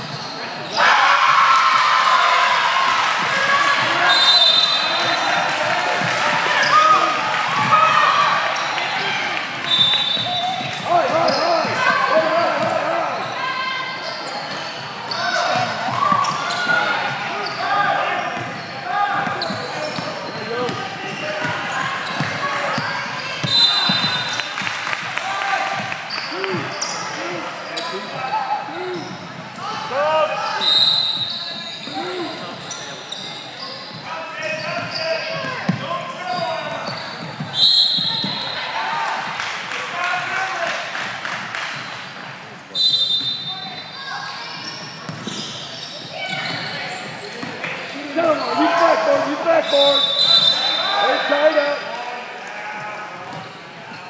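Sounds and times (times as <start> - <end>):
sneaker squeaks: 0.0 - 0.8, 3.6 - 5.4, 6.4 - 24.6, 25.8 - 38.8, 41.7 - 52.0, 53.2 - 54.0
people calling out in gym: 0.2 - 40.8, 42.7 - 53.2.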